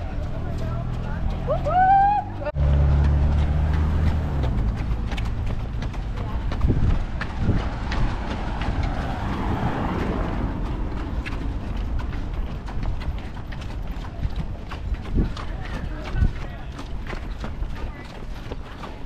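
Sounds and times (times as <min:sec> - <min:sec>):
running footsteps on asphalt: 0:00.0 - 0:19.0.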